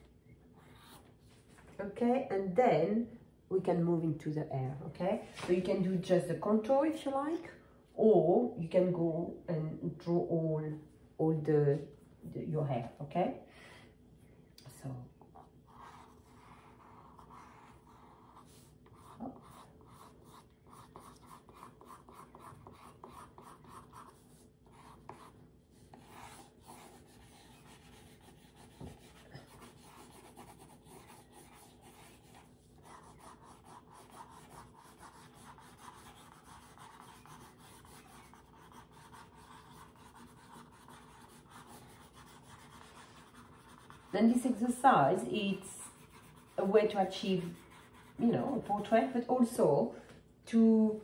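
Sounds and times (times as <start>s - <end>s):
pencil rubbing on paper: 15.7s - 49.2s.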